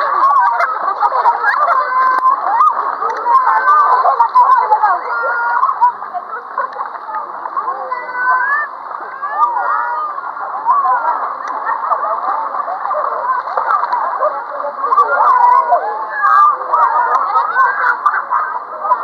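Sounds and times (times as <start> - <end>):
children calling and shouting: 0.0 - 19.0
water splashing in a pool: 0.0 - 19.0.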